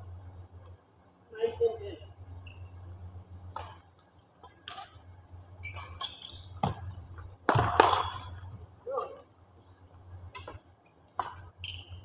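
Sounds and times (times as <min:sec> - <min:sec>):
shoes squeaking on court floor: 0:02.4 - 0:03.0, 0:05.6 - 0:08.5, 0:11.2 - 0:12.0
racket striking shuttlecock: 0:05.7 - 0:08.4.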